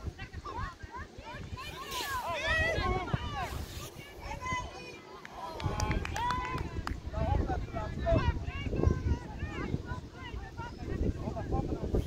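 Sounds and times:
wind rumbling on microphone: 0.0 - 4.9, 5.5 - 12.0.

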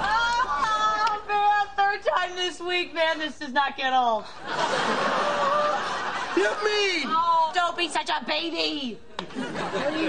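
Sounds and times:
studio audience laughing: 4.2 - 7.0, 9.2 - 10.0.

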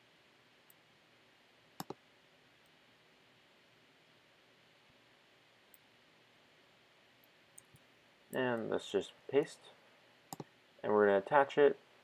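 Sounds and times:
faint steady hiss: 0.0 - 12.0
computer mouse clicks: 1.8 - 2.0, 10.3 - 10.5.

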